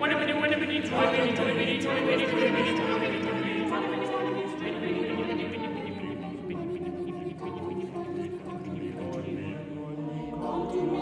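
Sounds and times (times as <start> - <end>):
choir singing held chords: 0.0 - 11.0.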